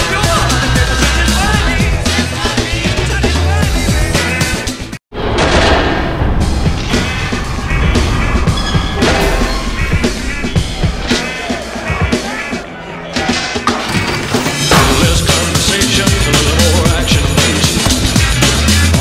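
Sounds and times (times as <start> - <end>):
commercial soundtrack music: 0.0 - 19.0.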